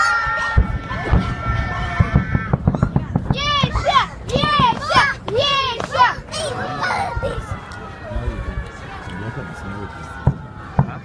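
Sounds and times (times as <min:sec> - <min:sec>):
children shouting: 0:00.0 - 0:11.0.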